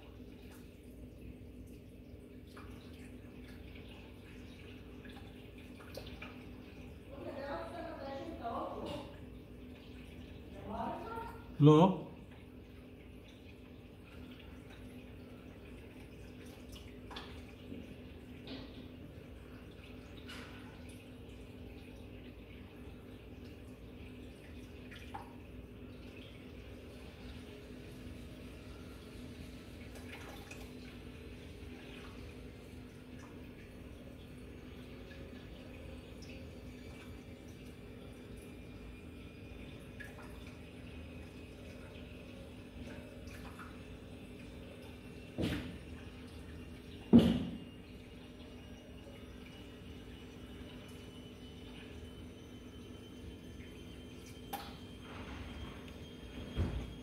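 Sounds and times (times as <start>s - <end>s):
aquarium equipment humming: 0.0s - 57.0s
water dripping and splashing: 0.0s - 57.0s.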